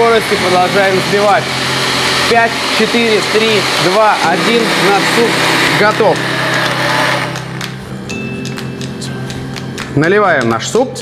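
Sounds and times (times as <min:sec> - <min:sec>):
blender motor: 0:00.0 - 0:07.8
background music: 0:00.0 - 0:11.0.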